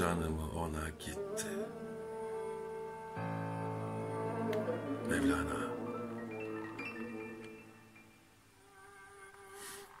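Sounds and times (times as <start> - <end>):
background music held note: 0.0 - 9.0
soft hiss: 0.0 - 10.0.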